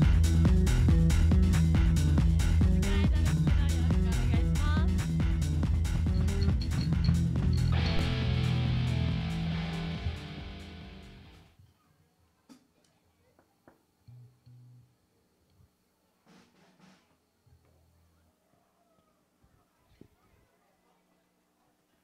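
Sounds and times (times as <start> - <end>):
low hum: 0.0 - 11.5
rock band playing: 0.0 - 11.5.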